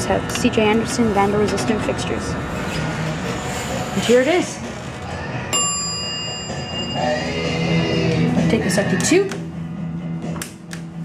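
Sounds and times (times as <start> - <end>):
elevator arrival chime: 5.4 - 8.1.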